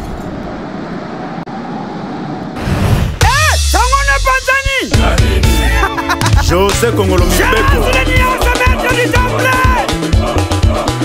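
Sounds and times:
noisy rumble sound effect: 0:00.0 - 0:03.8.

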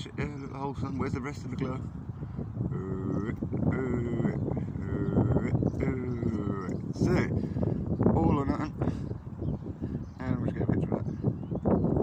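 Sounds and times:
low outdoor rumble: 0:00.0 - 0:11.2.

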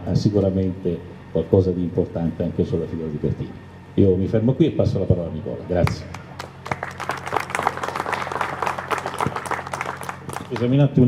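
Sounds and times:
sound system hum: 0:00.0 - 0:11.0
audience applauding: 0:06.4 - 0:10.8.

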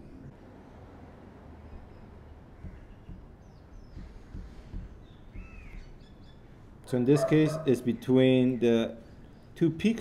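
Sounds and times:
faint bird calls: 0:01.6 - 0:09.6.

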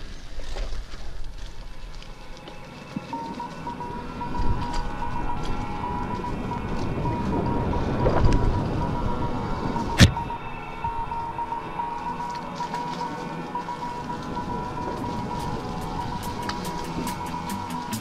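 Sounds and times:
bike tyres rumbling on dirt trail: 0:00.0 - 0:18.0
steady high whine: 0:01.8 - 0:18.0
wind buffeting microphone: 0:03.0 - 0:18.0.

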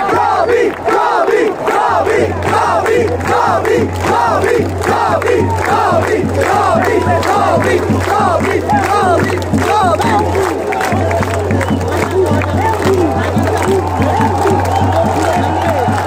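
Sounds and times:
stadium crowd chanting: 0:00.0 - 0:16.0.

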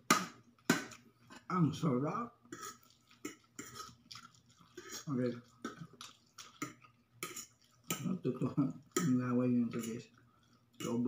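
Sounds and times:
fork scraping ceramic plate: 0:02.5 - 0:04.0.

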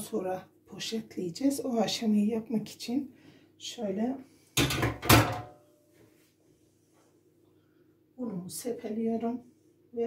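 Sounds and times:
metal baking tray clattering: 0:04.6 - 0:05.5.

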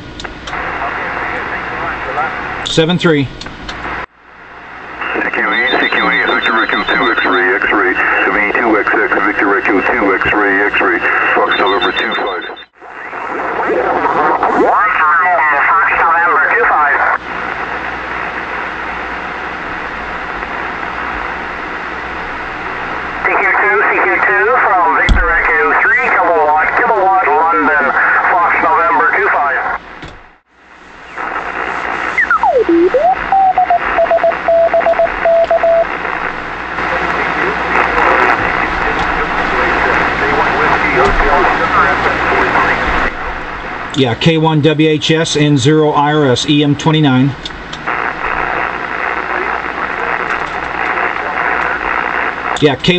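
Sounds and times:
radio band hiss: 0:00.0 - 0:29.8, 0:30.6 - 0:52.9
garbled radio voices: 0:00.5 - 0:03.3, 0:05.0 - 0:18.8, 0:22.7 - 0:29.8, 0:31.0 - 0:43.2, 0:44.0 - 0:52.9
radio whistle sweeping to tone: 0:32.0 - 0:33.8.

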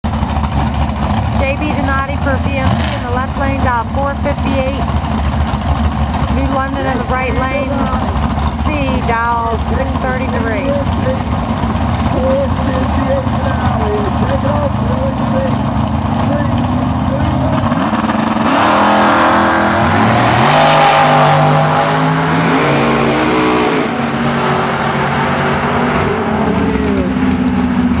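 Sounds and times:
drag racing engines revving: 0:00.1 - 0:28.0.

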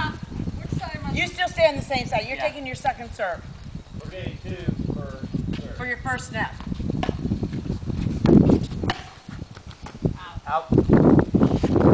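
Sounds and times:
paddle hitting ball: 0:07.0 - 0:07.2, 0:08.8 - 0:09.3.

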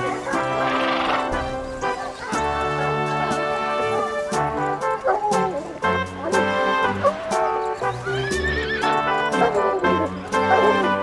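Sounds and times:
background music with steady beat: 0:00.0 - 0:11.0
horse whinnying: 0:00.4 - 0:11.0.

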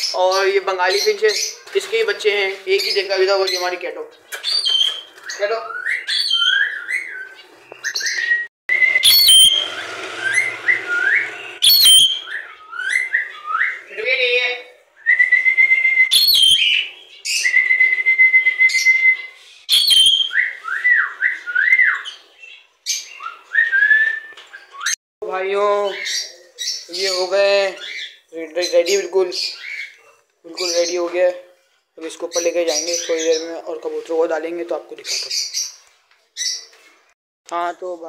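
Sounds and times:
parrots whistling: 0:05.7 - 0:13.8, 0:15.0 - 0:22.2
parrots screeching: 0:09.0 - 0:13.8, 0:16.1 - 0:17.6, 0:19.7 - 0:20.4.

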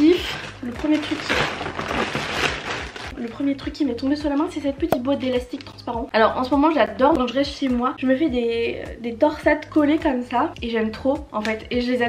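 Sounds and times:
plastic packaging rustling: 0:00.0 - 0:03.2.

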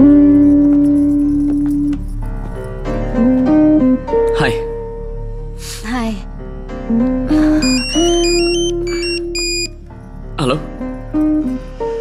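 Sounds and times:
high beeping tones: 0:07.6 - 0:09.8.

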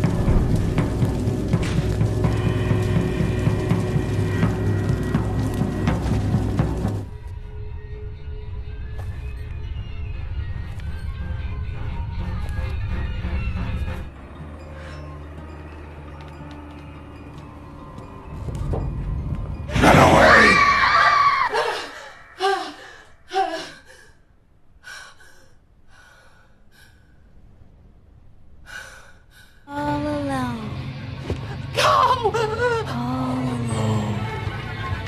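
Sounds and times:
dark droning film score: 0:00.0 - 0:35.0
loud scream: 0:19.7 - 0:22.5.

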